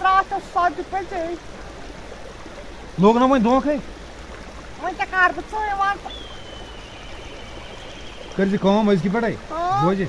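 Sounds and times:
faint high tone falling: 6.0 - 8.6.

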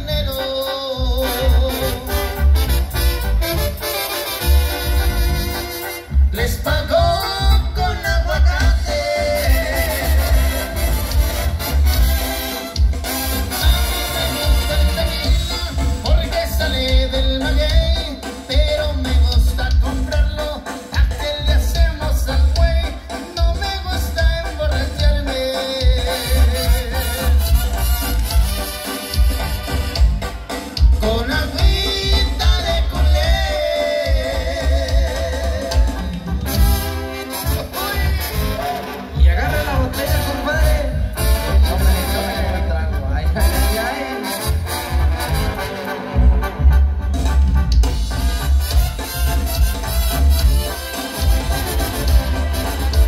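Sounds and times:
brass band music: 0.0 - 53.0
drums: 0.0 - 53.0
pulsing bass: 4.4 - 53.0.

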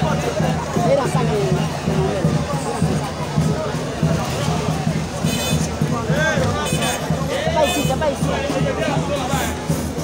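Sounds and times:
loud overlapping raised voices: 0.0 - 10.0.

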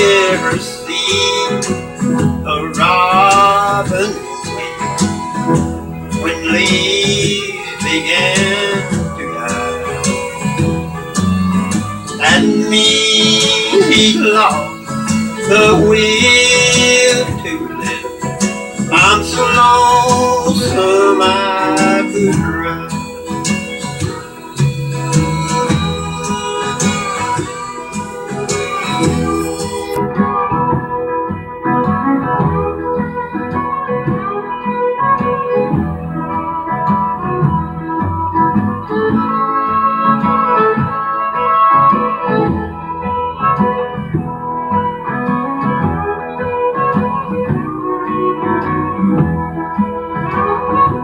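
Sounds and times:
guitar and bass: 0.0 - 51.0
organ-like lead melody: 0.0 - 51.0.

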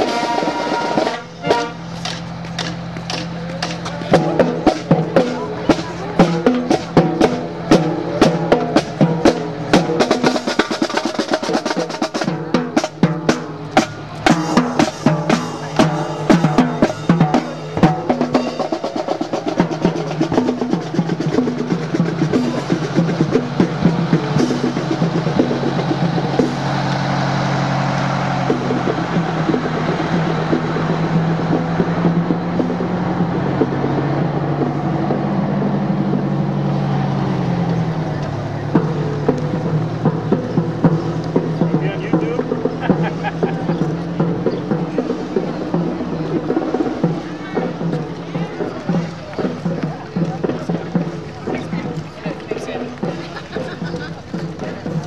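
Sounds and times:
fire truck engine hum: 0.0 - 47.0
snare and bass drums cadence: 0.0 - 55.0.

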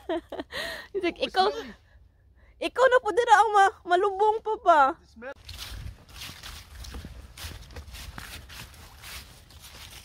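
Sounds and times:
footsteps through fallen leaves: 5.4 - 10.0.

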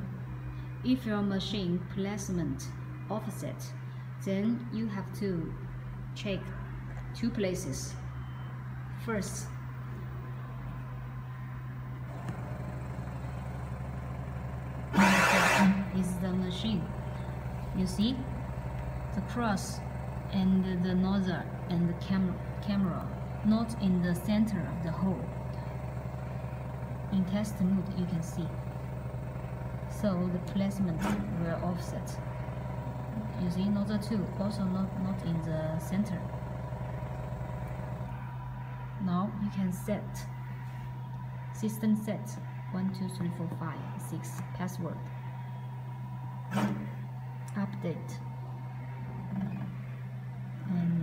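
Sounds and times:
machine humming: 5.5 - 51.0.

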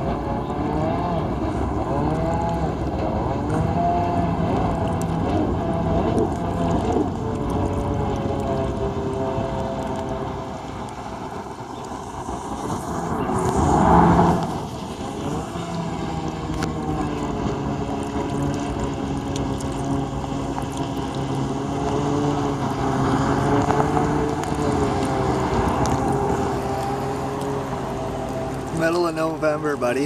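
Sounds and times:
wind noise on microphone: 0.0 - 28.7
jet ski engine running: 0.0 - 30.0
loud rush of noise: 0.0 - 30.0.

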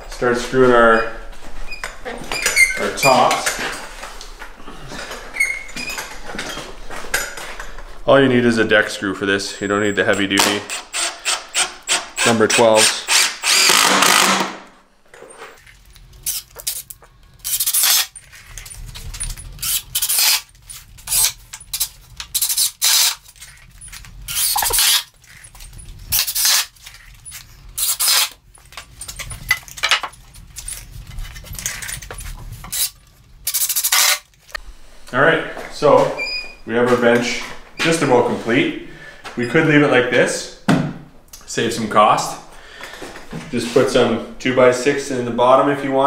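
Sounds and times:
impact driver driving screws: 10.4 - 14.6, 16.3 - 18.1, 19.6 - 20.5, 21.1 - 23.2, 24.3 - 25.1, 26.1 - 26.7, 27.8 - 28.4, 33.5 - 34.3.

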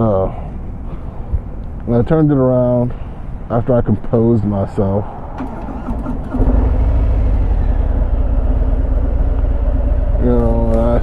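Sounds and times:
motorcycle pulling away: 5.4 - 11.0.

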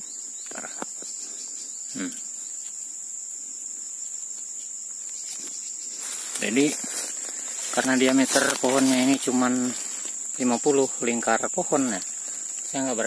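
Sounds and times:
insects droning: 0.0 - 13.0.

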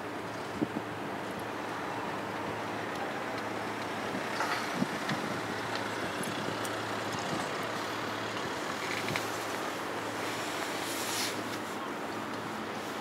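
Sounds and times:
wind noise on microphone: 0.2 - 2.6, 4.0 - 9.6.

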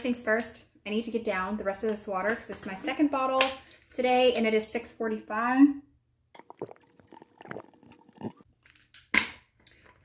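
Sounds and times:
person gulping water: 6.3 - 8.5.

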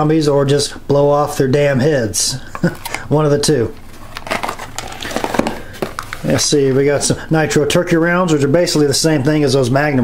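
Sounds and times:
cardboard boxes clicking and rustling: 3.8 - 6.6.

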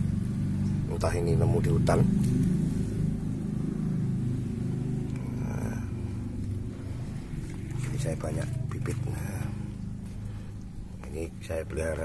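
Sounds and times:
engine rumbling: 0.0 - 12.0.

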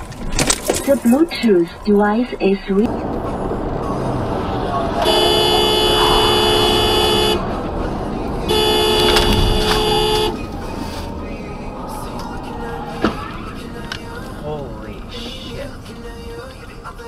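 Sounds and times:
road noise inside car: 0.0 - 17.0
car horn blasts: 4.8 - 7.7, 8.4 - 10.5.

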